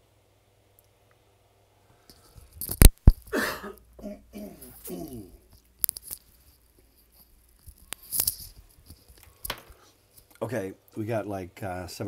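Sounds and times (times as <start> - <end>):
man murmuring: 3.4 - 5.5.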